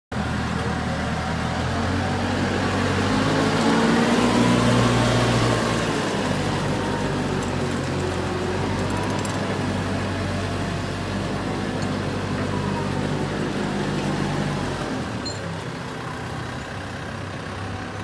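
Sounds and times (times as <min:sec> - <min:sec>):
diesel engine running: 0:00.1 - 0:18.0.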